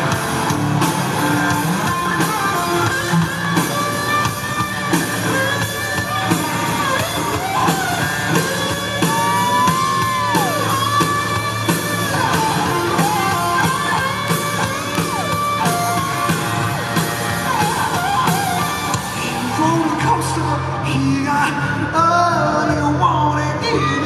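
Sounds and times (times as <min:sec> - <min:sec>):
steady drum beat: 0:00.0 - 0:20.3
lead electric guitar bending notes: 0:00.0 - 0:20.9
bass guitar: 0:00.0 - 0:24.0
rock band playing live: 0:00.0 - 0:24.0.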